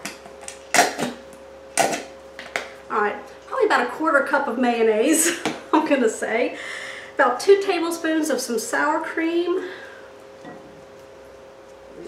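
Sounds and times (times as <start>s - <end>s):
faint two-note room hum: 0.0s - 12.0s.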